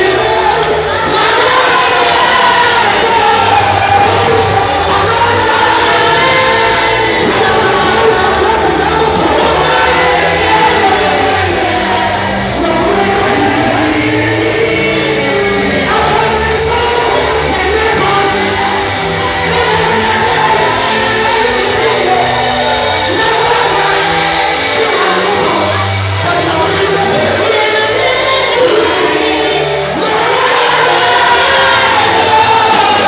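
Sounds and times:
bass line: 0:00.0 - 0:33.0
church worship singing: 0:00.0 - 0:33.0.

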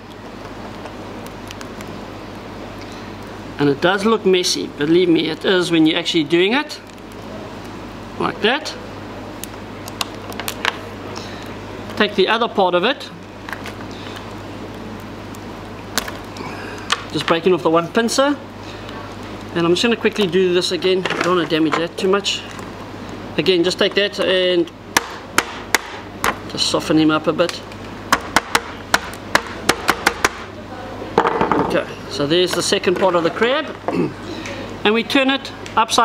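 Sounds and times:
low electrical hum: 0:00.0 - 0:36.0
tool knocking on crab: 0:28.1 - 0:30.5.

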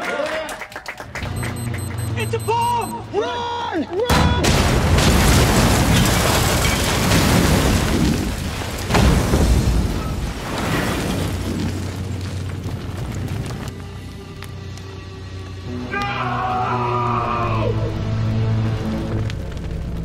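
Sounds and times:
car bomb explosion: 0:04.1 - 0:12.4
dramatic film score: 0:12.1 - 0:20.0.

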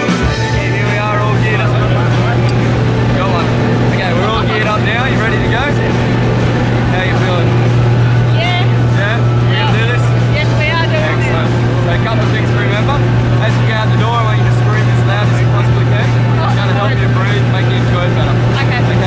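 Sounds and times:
plane engine drone: 0:00.0 - 0:19.0
voices talking: 0:00.1 - 0:19.0.

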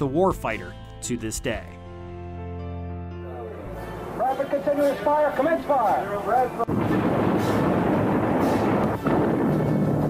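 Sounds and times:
ship guns firing rumble: 0:06.7 - 0:10.0.

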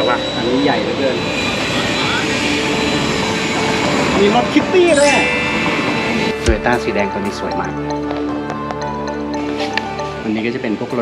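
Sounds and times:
high-pitched tone: 0:00.0 - 0:08.2.

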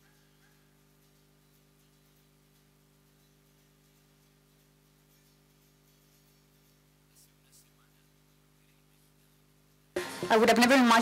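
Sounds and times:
faint low hum with hiss: 0:00.0 - 0:11.0.

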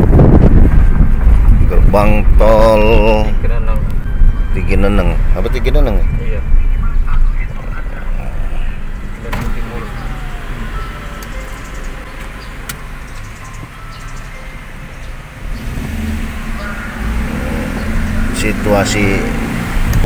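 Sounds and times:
car engine hum: 0:00.0 - 0:20.0
road rumble inside car: 0:00.0 - 0:20.0.

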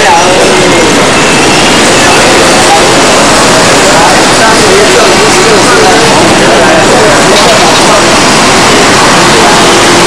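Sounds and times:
faint voices: 0:00.0 - 0:10.0
loud rushing noise: 0:00.0 - 0:10.0.

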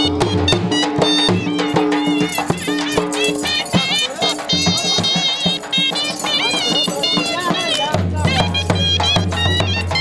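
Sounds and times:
dhol drum beats: 0:00.0 - 0:10.0
reed pipe melody: 0:00.0 - 0:10.0.

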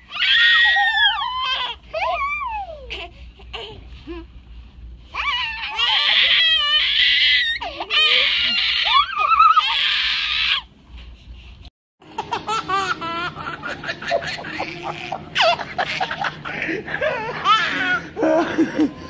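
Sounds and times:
baby crying and wailing: 0:00.1 - 0:03.8, 0:05.2 - 0:10.7, 0:12.2 - 0:18.8
child laughing: 0:12.2 - 0:19.0.

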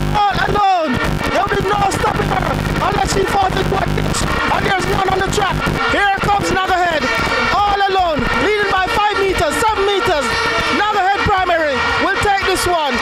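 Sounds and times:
excited voices shouting: 0:00.2 - 0:13.0.

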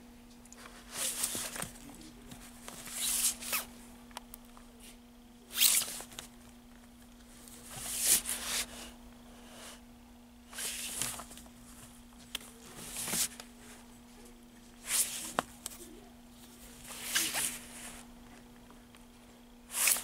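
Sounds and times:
steady low hum: 0:00.0 - 0:20.0
record sleeves sliding and scraping: 0:00.6 - 0:03.7, 0:05.5 - 0:06.3, 0:07.6 - 0:08.9, 0:10.5 - 0:13.9, 0:14.8 - 0:15.9, 0:16.5 - 0:18.1, 0:19.7 - 0:20.0.

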